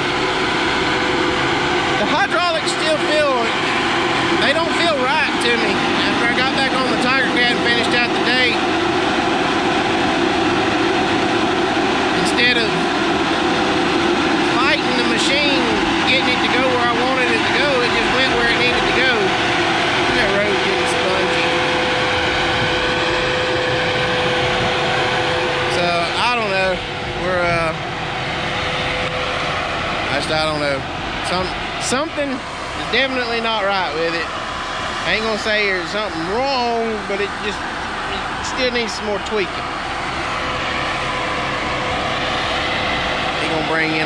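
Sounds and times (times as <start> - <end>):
diesel engine under load: 0.0 - 44.0
steady whine: 0.0 - 44.0.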